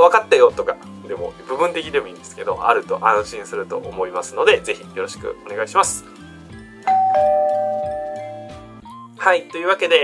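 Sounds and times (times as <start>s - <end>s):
quiet background music: 0.0s - 10.0s
two-note ding-dong chime: 6.9s - 8.7s.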